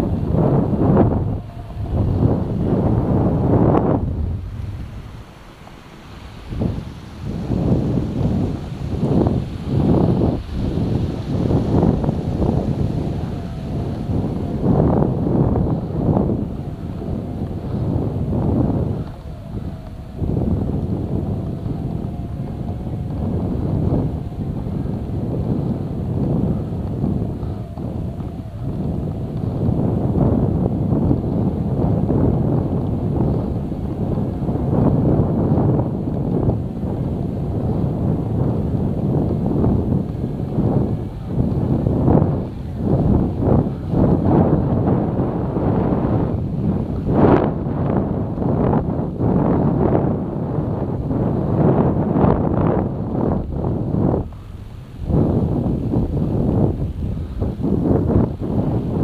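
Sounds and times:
low vehicle rumble: 0.0 - 51.4
wind buffeting microphone: 0.0 - 59.0.

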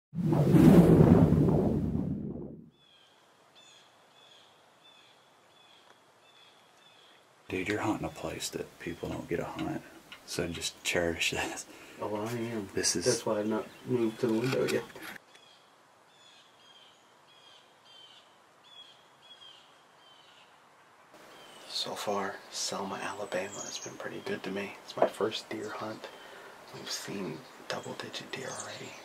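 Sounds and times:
low whooshing rumble: 0.2 - 2.7
small bird chirping: 21.2 - 24.6
faint bird calls: 21.2 - 29.0.

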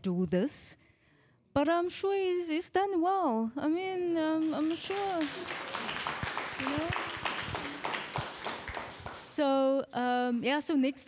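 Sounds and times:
audience clapping: 4.4 - 9.4.

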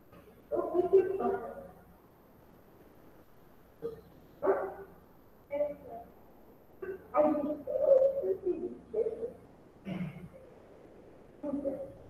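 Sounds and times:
dog barking: 3.8 - 5.0.

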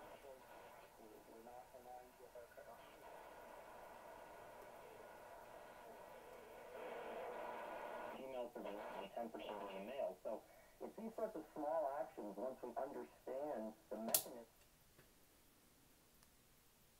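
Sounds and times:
faint radio speech: 0.0 - 14.5
radio band noise and hiss: 0.0 - 14.6.

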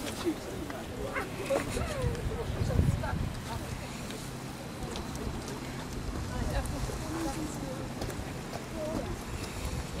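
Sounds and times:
distant people talking: 0.0 - 10.0
wind rumble on microphone: 1.5 - 4.1, 5.0 - 10.0.

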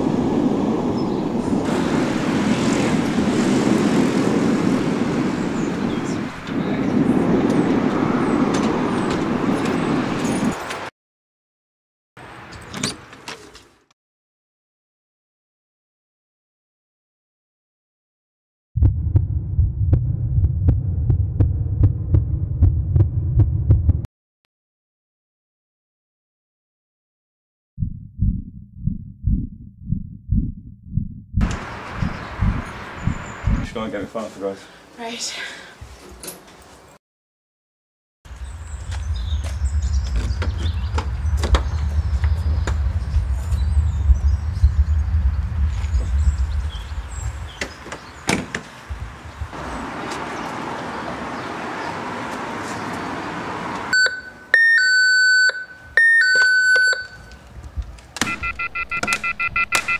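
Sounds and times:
low throbbing heartbeat drone: 18.8 - 24.1, 27.8 - 33.7, 38.6 - 47.5
steady low rumble: 18.8 - 24.1, 27.8 - 33.8, 38.3 - 47.6.

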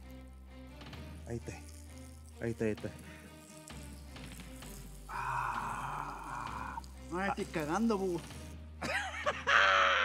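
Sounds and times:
quiet background music: 0.0 - 10.0.

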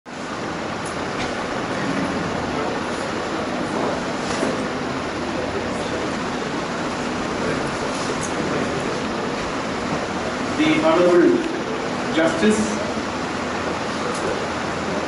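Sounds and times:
hall rushing background noise: 0.2 - 15.0.

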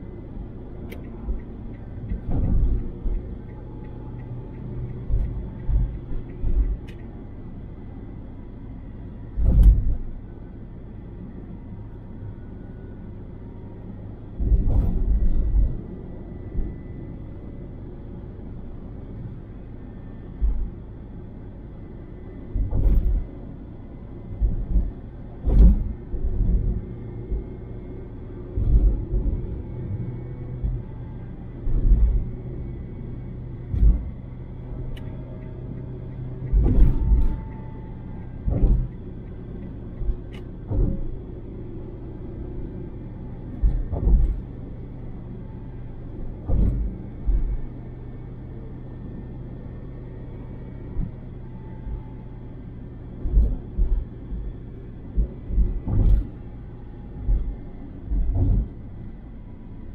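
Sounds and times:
road and engine rumble in car: 0.0 - 59.9.

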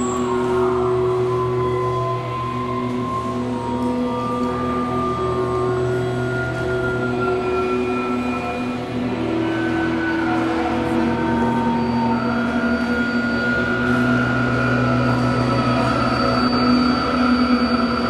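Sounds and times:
electric guitars sustained drone: 0.0 - 18.0.

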